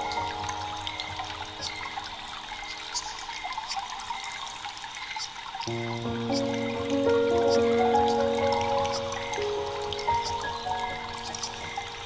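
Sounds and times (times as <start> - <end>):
slow ambient music: 0.0 - 4.7, 5.7 - 12.0
water trickling: 0.0 - 12.0.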